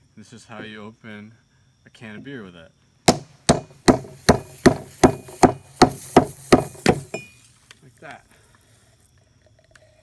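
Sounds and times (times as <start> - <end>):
hockey puck hammering a can: 3.1 - 7.3.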